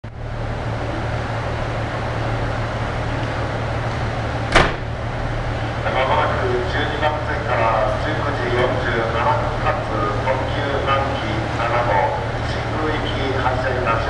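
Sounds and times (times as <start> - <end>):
diesel railcar engine idling: 0.0 - 14.0.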